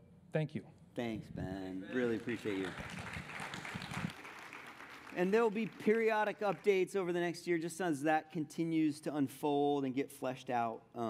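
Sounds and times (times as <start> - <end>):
audience applauding: 1.9 - 6.8.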